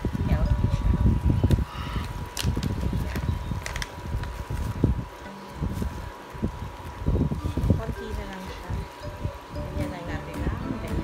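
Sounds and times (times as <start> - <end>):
seasoning packet rustling: 2.2 - 8.5.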